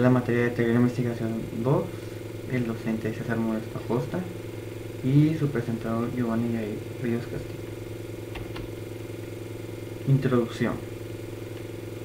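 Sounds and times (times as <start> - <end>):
low buzzy hum: 0.0 - 12.0.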